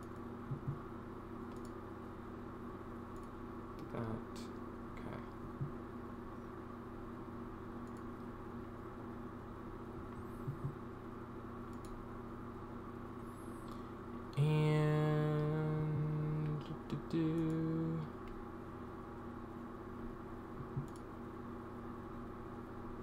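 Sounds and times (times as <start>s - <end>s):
faint electrical hum: 0.0s - 23.0s
man humming low note: 14.3s - 18.2s.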